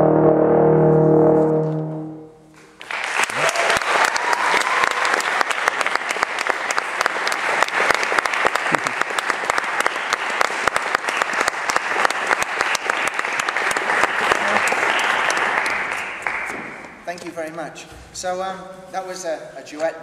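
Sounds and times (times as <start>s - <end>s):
audience applauding: 2.7s - 17.0s.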